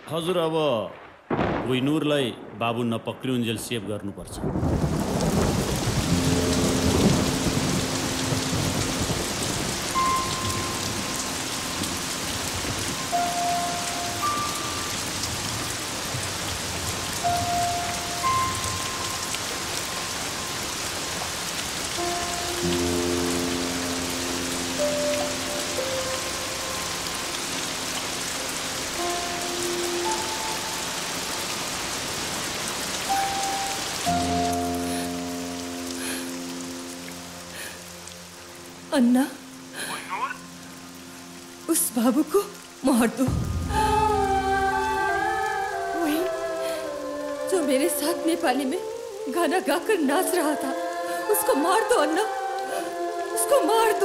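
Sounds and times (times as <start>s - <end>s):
heavy rain pouring: 0.0s - 54.0s
slow film score: 0.0s - 54.0s
thunder rumble: 0.9s - 26.9s, 43.2s - 46.2s.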